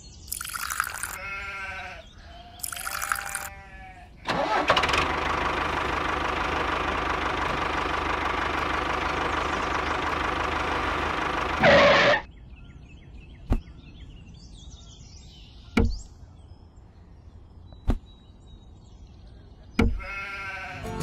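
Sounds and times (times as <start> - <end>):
animal bleating: 1.0 - 4.2, 19.9 - 21.0.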